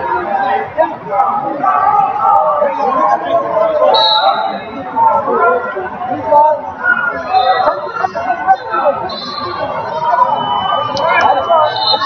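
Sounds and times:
voices chattering in a hall: 0.0 - 12.0
referee's whistle: 3.8 - 4.7, 9.0 - 12.0.

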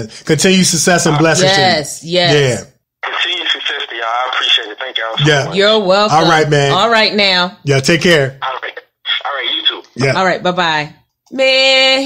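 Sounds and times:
person speaking over telephone: 1.0 - 7.2, 8.3 - 10.3.

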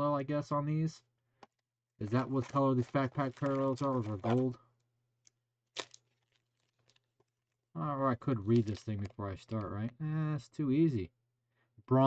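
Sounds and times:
foil wrapper crinkling: 2.1 - 4.5, 5.2 - 7.6, 8.5 - 9.6.

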